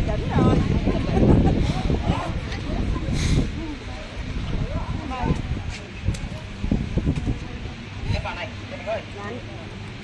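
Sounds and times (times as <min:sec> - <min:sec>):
wind buffeting microphone: 0:00.0 - 0:08.5
crowd talking faintly: 0:00.0 - 0:10.0.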